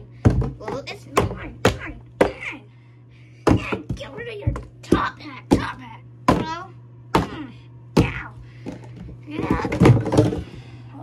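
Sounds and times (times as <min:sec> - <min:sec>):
objects thunking in bathtub: 0:00.2 - 0:02.4, 0:08.0 - 0:10.7.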